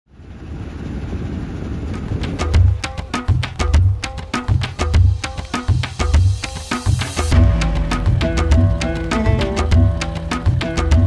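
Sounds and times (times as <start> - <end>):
boat engine rumbling: 7.3 - 11.0.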